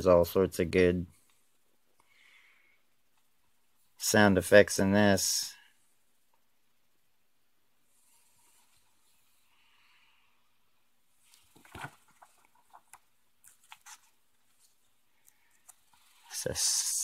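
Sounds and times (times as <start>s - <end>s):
comic book pages turning: 11.2s - 16.6s.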